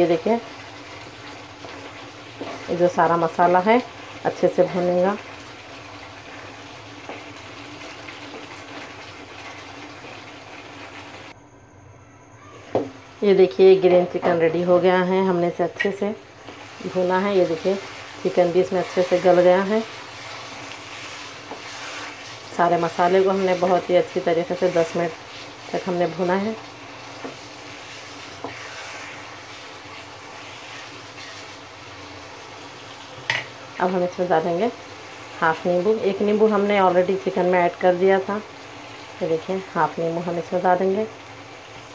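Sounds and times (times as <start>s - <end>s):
chicken sizzling in hot oil: 0.0s - 11.4s, 12.6s - 41.9s.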